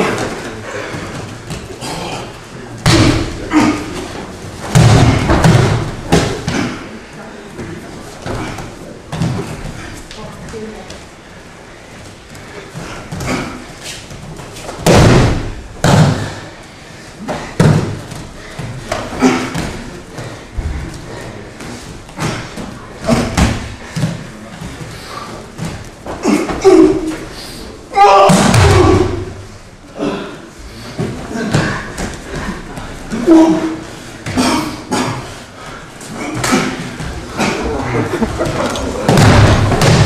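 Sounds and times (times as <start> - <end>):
bodies thudding onto mats: 2.8 - 6.8, 13.0 - 16.4, 38.3 - 40.0.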